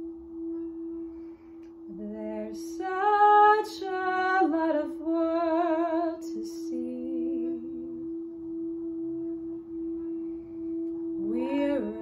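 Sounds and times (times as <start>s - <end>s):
singing bowl ringing: 0.0s - 12.0s.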